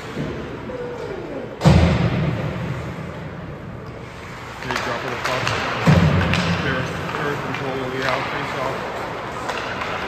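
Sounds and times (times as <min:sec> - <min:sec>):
booming echo of a loud bang: 0:01.6 - 0:03.0.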